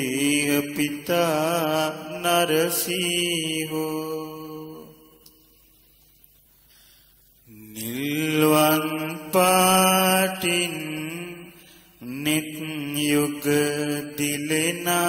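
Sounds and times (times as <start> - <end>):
man chanting: 0.0 - 5.2, 7.5 - 15.0.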